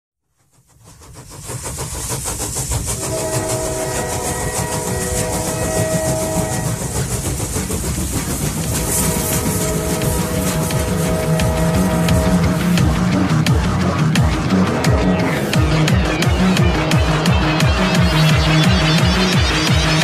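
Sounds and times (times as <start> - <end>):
train rhythmic clatter: 0.2 - 20.0
train horn chord: 3.0 - 7.0, 8.8 - 15.9.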